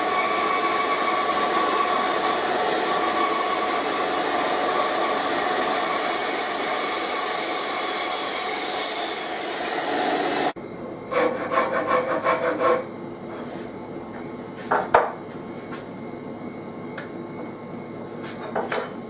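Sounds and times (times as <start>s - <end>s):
dust extractor running: 0.0s - 11.1s
bandsaw cutting wood: 0.0s - 12.8s.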